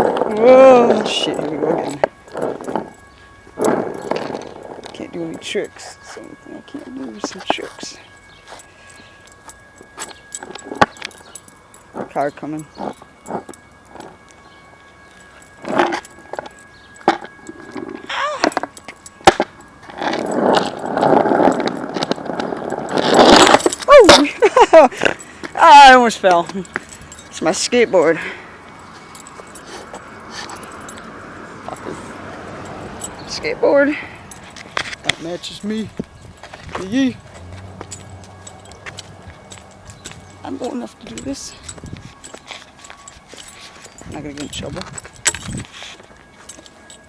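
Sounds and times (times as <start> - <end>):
keys jangling: 0.3 - 47.0
skateboard clicks and rattles: 15.6 - 24.3.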